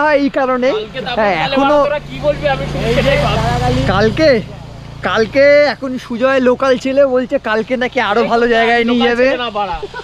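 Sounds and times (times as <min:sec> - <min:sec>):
man speaking: 0:00.0 - 0:09.9.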